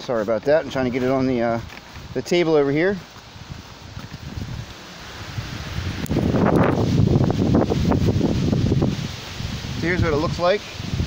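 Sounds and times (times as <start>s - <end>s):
wind rumble on microphone: 3.3s - 11.0s.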